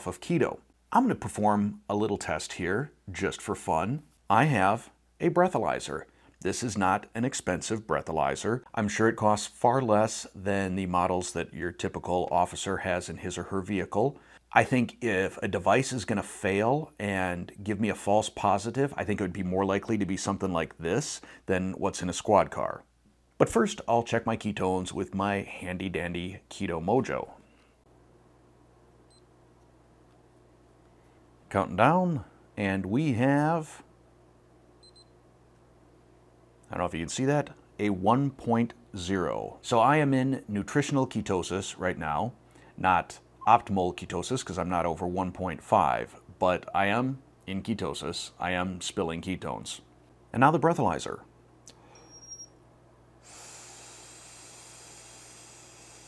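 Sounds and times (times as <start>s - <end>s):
breath blown into breathalyzer: 53.2s - 56.0s.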